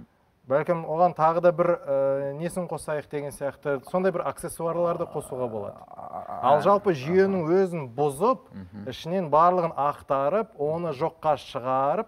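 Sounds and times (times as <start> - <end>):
man's voice with bending pitch: 4.6 - 7.4.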